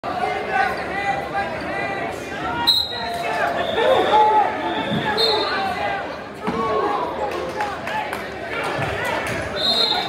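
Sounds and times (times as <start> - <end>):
spectators calling out and talking: 0.0 - 10.0.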